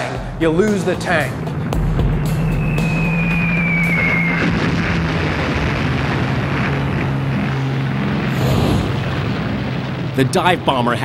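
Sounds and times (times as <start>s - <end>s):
low drone and rumble: 0.0s - 11.0s
falling bomb whistle: 2.3s - 5.2s.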